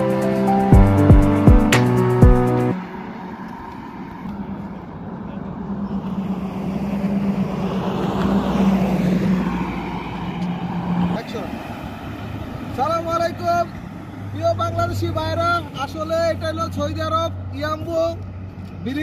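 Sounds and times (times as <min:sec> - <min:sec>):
car passing by: 0:01.7 - 0:19.0.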